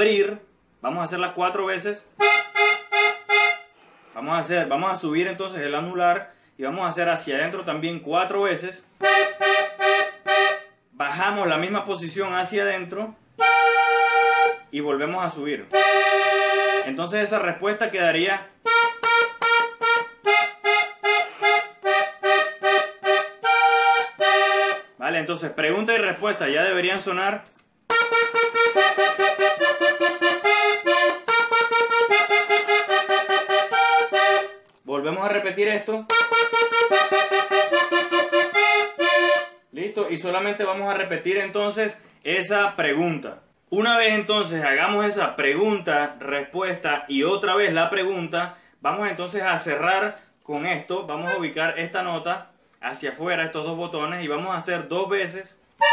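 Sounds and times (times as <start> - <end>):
button accordion short notes: 2.2 - 4.2, 9.0 - 10.8, 13.4 - 14.7, 15.7 - 17.0, 18.6 - 25.0, 27.9 - 34.7, 36.1 - 39.6.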